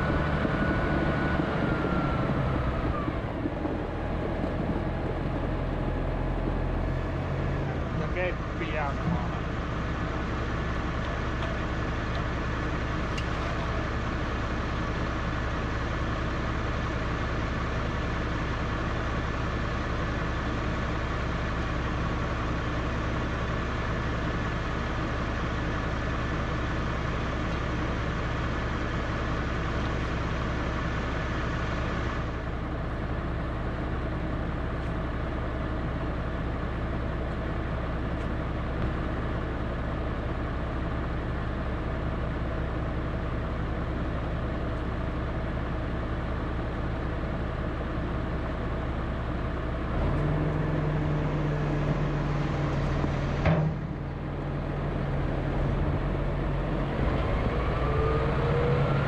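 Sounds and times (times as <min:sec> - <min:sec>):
tractor diesel engine idling: 0:00.0 - 0:59.0.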